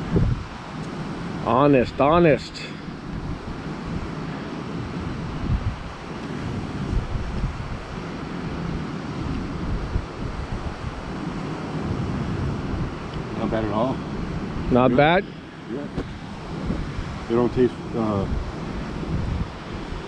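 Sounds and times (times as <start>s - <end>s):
sea wash: 0.0s - 20.0s
wind buffeting microphone: 0.0s - 20.0s.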